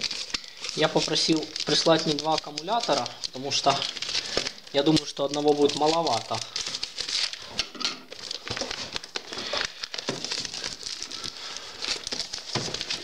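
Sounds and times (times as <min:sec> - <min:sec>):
package wrapping crinkling: 0:00.0 - 0:13.0.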